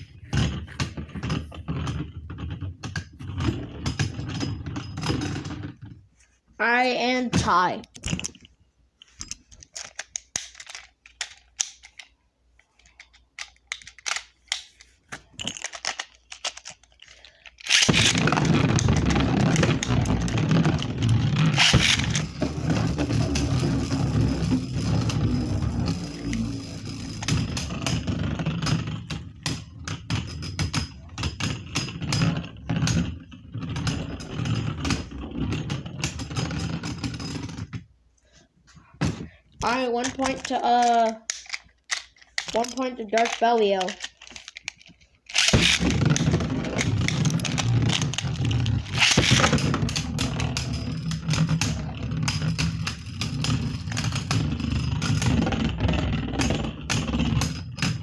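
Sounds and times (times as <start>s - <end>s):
spinning tops clashing and scraping: 13.8s - 37.7s, 39.6s - 58.0s.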